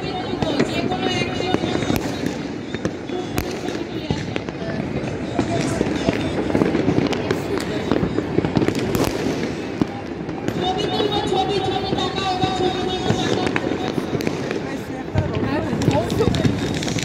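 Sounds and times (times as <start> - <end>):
fireworks cracks and pops: 0.0 - 17.0
murmur of voices: 0.0 - 17.0.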